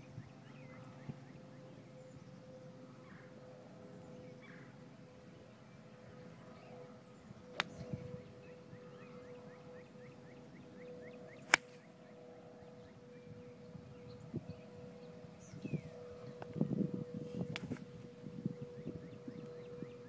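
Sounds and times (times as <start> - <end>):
golf club striking ball: 7.6 - 7.8, 11.5 - 11.8.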